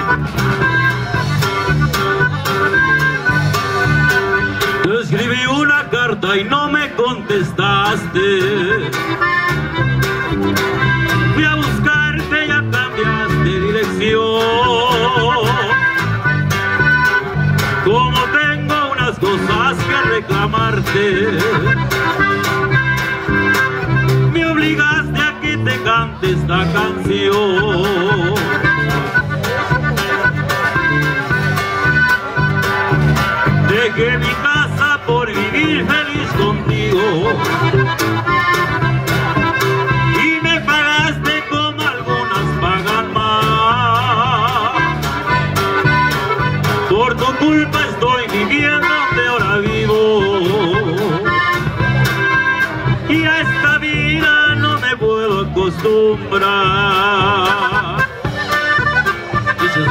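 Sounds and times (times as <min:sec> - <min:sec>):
accordion melody: 0:00.0 - 0:59.9
drum kit beat: 0:00.0 - 0:59.9
electric bass: 0:00.0 - 0:59.9
guitar: 0:00.0 - 0:59.9.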